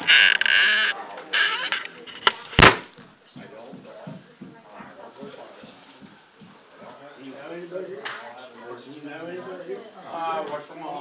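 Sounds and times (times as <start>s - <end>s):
muffled talking: 0.0s - 11.0s.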